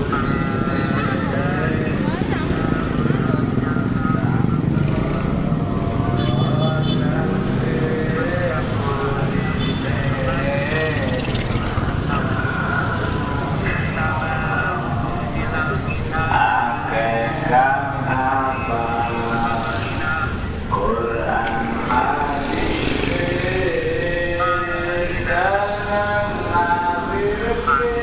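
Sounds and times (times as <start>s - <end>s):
motorcycle engines running: 0.0s - 28.0s
people's voices: 0.0s - 28.0s.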